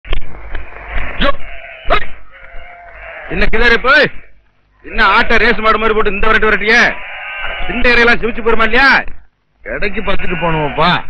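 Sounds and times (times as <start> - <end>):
outdoor village ambience: 0.1 - 11.0
goat bleating: 0.6 - 8.8, 9.7 - 11.0.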